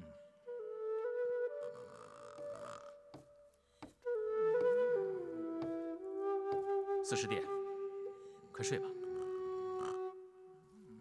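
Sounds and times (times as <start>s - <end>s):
bamboo flute melody: 0.0s - 3.4s, 4.0s - 11.0s.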